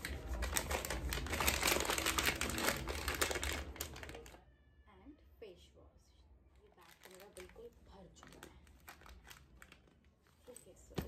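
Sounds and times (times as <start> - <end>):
plastic packet crinkling: 0.0 - 4.4, 6.6 - 10.7.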